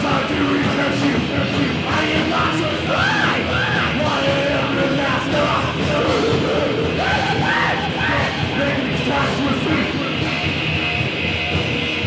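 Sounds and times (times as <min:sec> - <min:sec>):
shouted vocals: 0:00.0 - 0:10.0
distorted electric guitar: 0:00.0 - 0:12.0
drums: 0:00.0 - 0:12.0.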